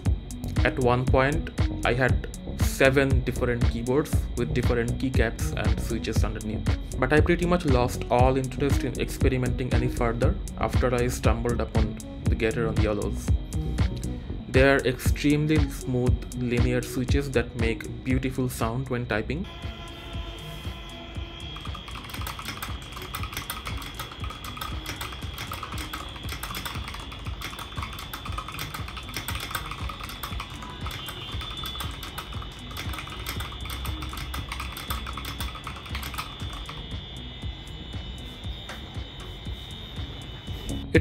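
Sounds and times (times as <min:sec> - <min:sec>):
mechanical keyboard typing: 0:21.6 - 0:36.9.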